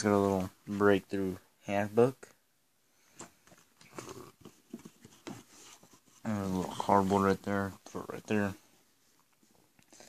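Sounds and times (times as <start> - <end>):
soft knocks and rustles of cardboard: 3.2 - 8.5.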